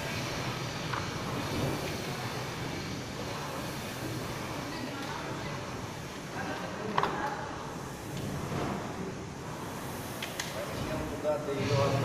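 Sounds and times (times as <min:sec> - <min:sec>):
rowing machine fan whooshing: 0:00.0 - 0:12.0.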